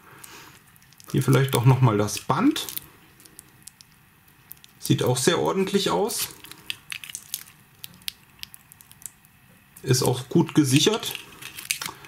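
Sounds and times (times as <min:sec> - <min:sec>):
fingers rustling: 0:09.9 - 0:12.0.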